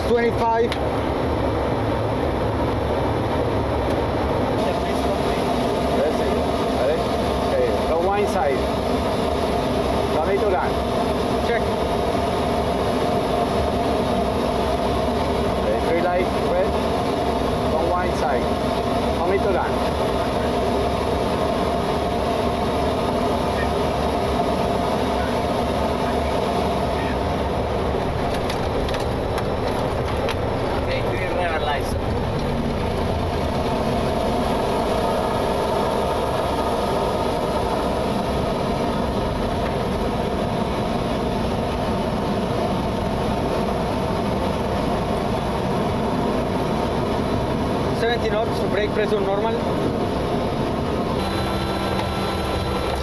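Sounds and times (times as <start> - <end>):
jet engines: 0.0 - 53.0
rushing air: 0.8 - 48.0.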